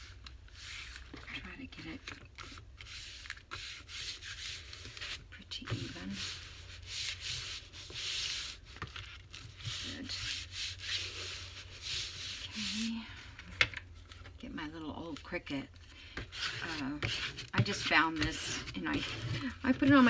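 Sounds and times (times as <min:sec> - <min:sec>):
hands rubbing paper: 0:00.0 - 0:13.1, 0:16.3 - 0:20.0.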